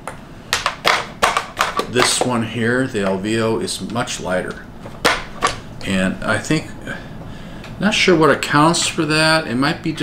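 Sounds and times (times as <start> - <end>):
plastic helmets clicking and knocking: 0.5 - 2.4, 4.8 - 5.6.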